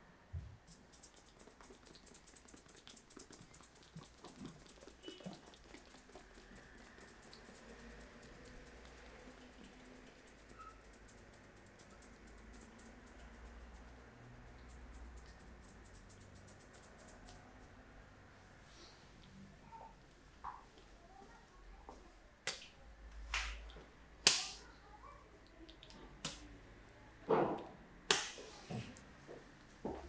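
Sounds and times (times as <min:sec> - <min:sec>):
fingertips scratching through hair: 0:00.7 - 0:17.7.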